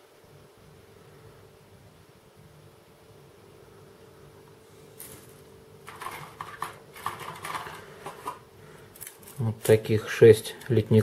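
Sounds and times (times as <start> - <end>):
plastic frames clattering together: 5.0 - 8.4.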